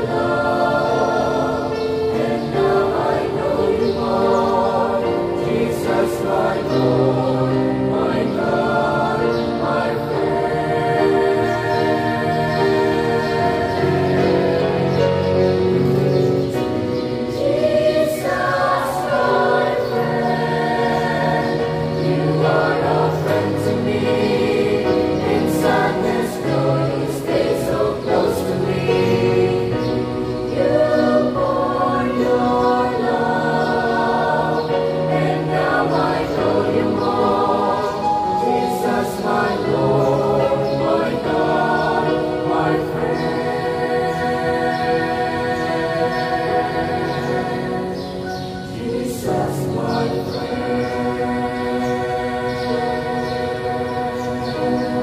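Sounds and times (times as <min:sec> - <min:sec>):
choir singing slow hymn: 0:00.0 - 0:55.0.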